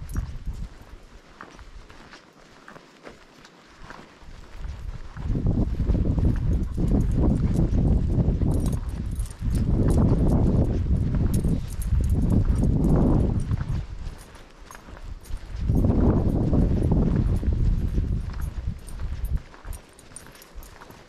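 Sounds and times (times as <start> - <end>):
wind on microphone: 0.0 - 1.9, 4.2 - 21.0
footsteps on dry dirt: 0.0 - 21.0.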